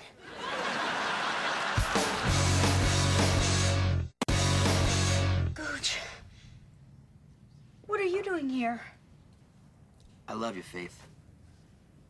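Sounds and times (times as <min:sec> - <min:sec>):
low background noise: 0:05.5 - 0:12.0.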